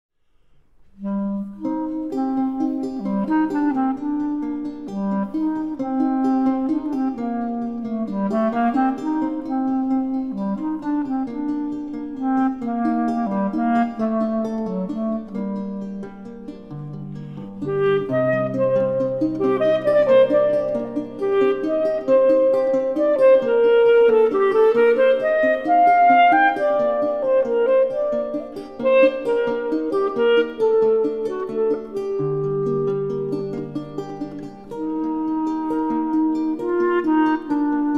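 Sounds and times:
plucked lute: 0:00.4 - 0:37.9
clarinet melody: 0:00.8 - 0:37.9.

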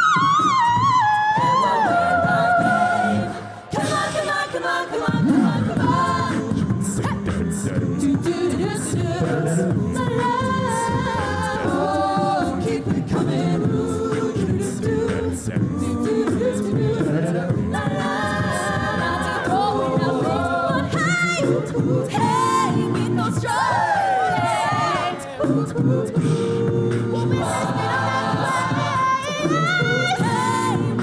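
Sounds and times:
a cappella group singing: 0:00.0 - 0:31.0.

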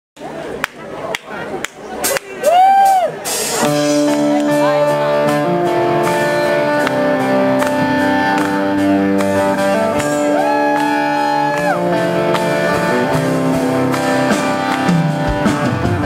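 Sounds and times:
electric guitar chords: 0:03.5 - 0:16.0.

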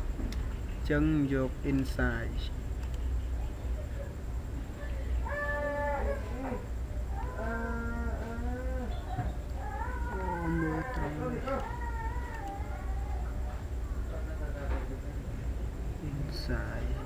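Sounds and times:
drawn-out pitched vocal calls: 0:03.0 - 0:14.1.

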